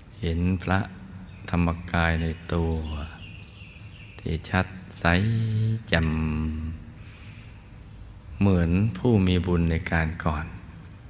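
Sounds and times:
background hiss: 0.0s - 11.0s
man talking calmly: 0.2s - 3.2s, 4.2s - 7.0s, 8.3s - 10.7s.

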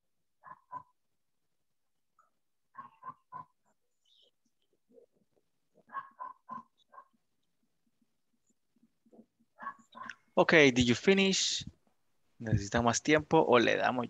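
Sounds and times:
faint dog barking: 0.4s - 1.0s, 2.7s - 3.6s, 5.8s - 7.2s, 9.6s - 10.2s.

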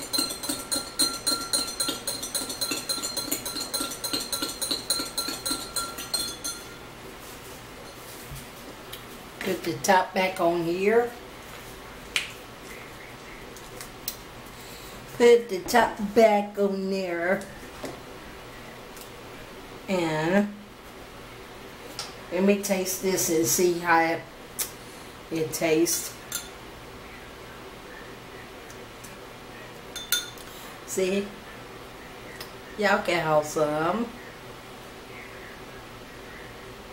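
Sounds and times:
stick clinking on glass: 0.0s - 6.8s.

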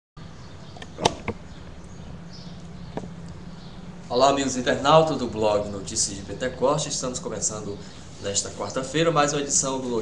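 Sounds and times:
steady low hum: 0.2s - 10.0s
background hiss: 0.4s - 10.0s
sharp clicks: 0.7s - 1.4s.

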